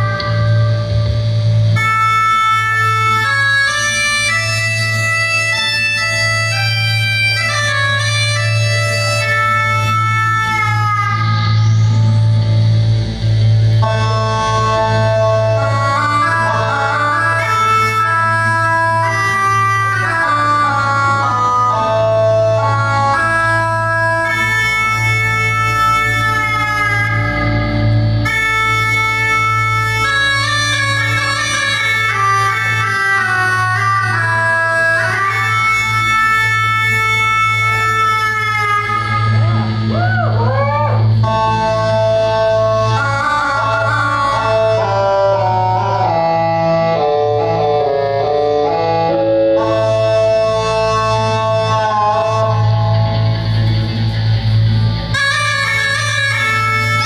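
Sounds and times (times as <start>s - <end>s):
live rock band playing: 0.0s - 46.3s, 47.0s - 57.0s
organ chords on keyboard: 0.0s - 57.0s.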